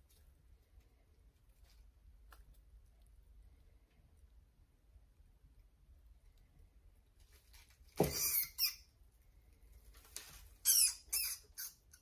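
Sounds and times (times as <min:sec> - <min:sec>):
rat squealing: 0:08.0 - 0:09.0, 0:10.6 - 0:12.0.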